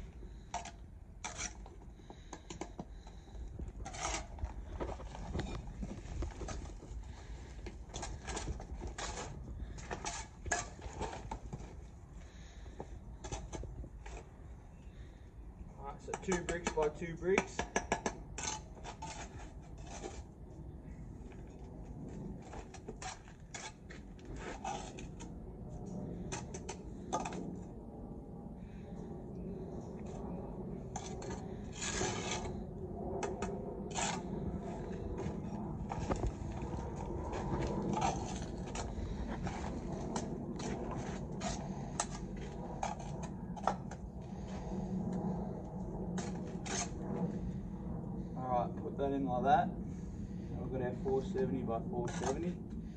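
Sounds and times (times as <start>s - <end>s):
trowel scraping mortar: 3.8s - 4.4s, 16.2s - 20.3s.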